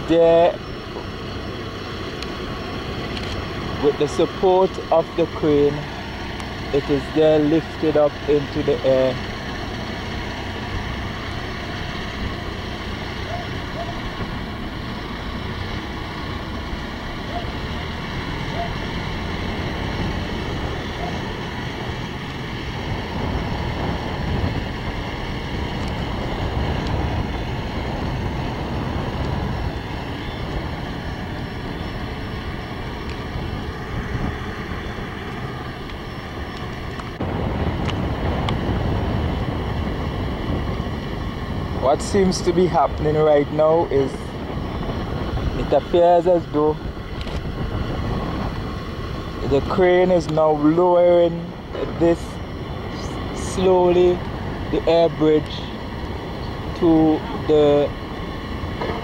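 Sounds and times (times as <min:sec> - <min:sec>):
heavy diesel machinery running: 0:00.0 - 0:59.0
wind buffeting microphone: 0:00.0 - 0:59.0.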